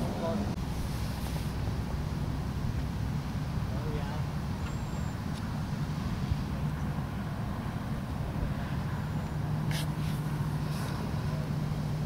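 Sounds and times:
diesel engine rumble: 0:00.0 - 0:12.0.

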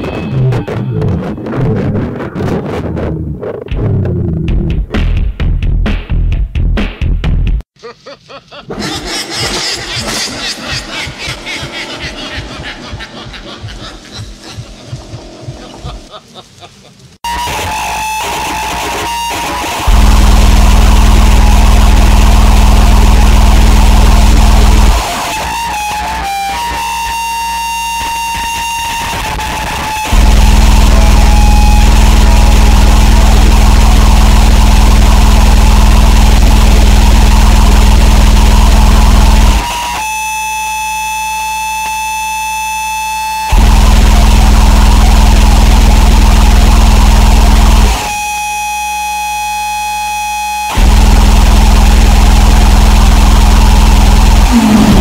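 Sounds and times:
dense wall of distorted noise: 0:08.2 - 0:55.0
high-pitched whining tones: 0:17.3 - 0:55.0.

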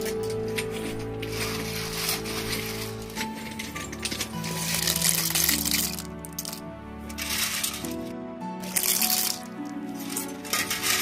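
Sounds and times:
background music: 0:00.0 - 0:11.0
snail shells clinking: 0:00.0 - 0:11.0.

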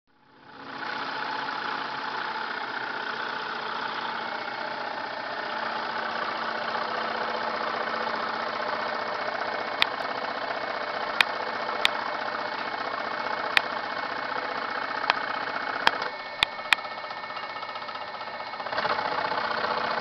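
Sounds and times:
scroll saw running: 0:00.3 - 0:20.0
sharp click: 0:11.2 - 0:12.0.

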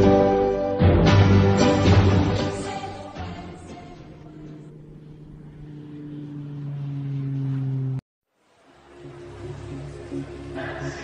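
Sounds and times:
low held drone tones: 0:03.2 - 0:11.0.

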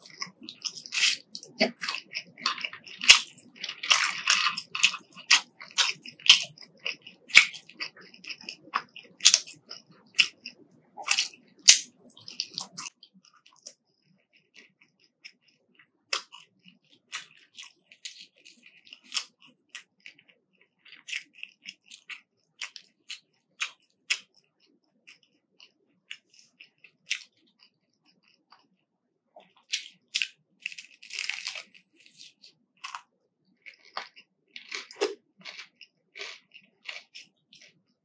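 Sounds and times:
fried fish coating crunching: 0:00.0 - 0:13.8, 0:14.4 - 0:28.7, 0:29.4 - 0:37.8
chewing crispy food: 0:00.0 - 0:38.0.

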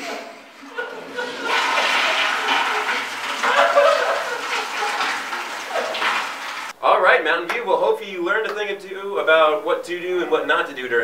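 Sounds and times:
toilet flushing: 0:00.0 - 0:06.8.

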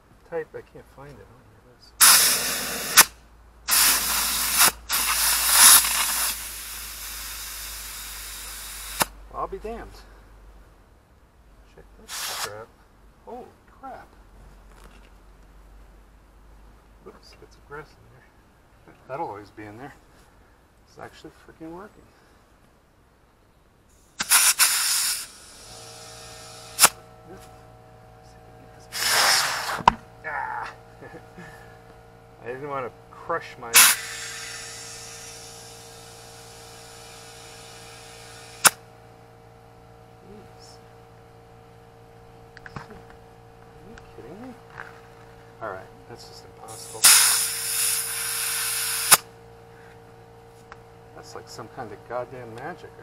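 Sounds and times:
faint steady hum: 0:00.0 - 0:53.0
air hose hissing: 0:02.0 - 0:09.1, 0:12.0 - 0:12.6, 0:24.0 - 0:27.6, 0:28.8 - 0:30.0, 0:33.3 - 0:38.8, 0:46.6 - 0:49.3.

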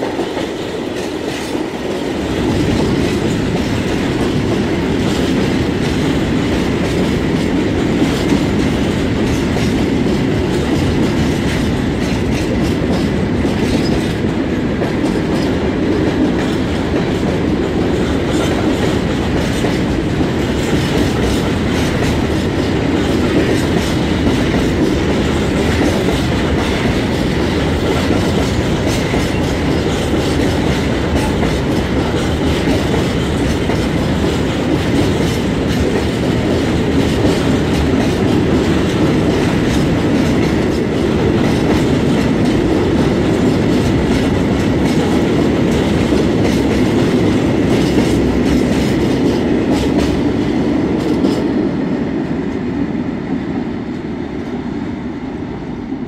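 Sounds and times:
freight train rumbling past: 0:00.0 - 0:56.0.

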